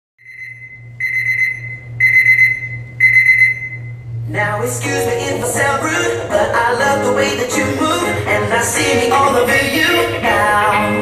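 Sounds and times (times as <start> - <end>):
high electronic beeps: 0.2 - 4.0
low hum: 0.2 - 11.0.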